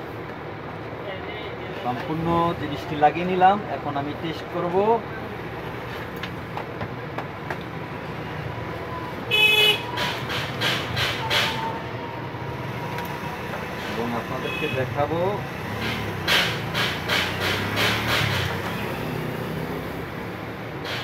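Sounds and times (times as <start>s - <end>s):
vehicle horn toot: 9.3s - 10.0s.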